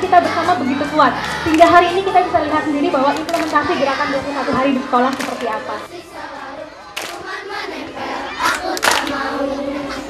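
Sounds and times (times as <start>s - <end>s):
children shouting: 0.0s - 10.0s
sharp claps: 3.1s - 3.7s, 5.1s - 5.5s, 7.0s - 7.3s, 8.4s - 9.2s.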